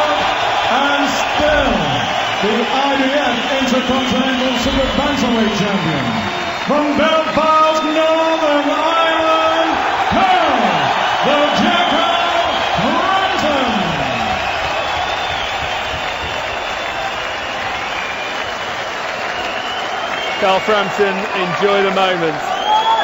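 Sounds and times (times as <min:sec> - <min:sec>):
crowd cheering and applauding: 0:00.0 - 0:23.0.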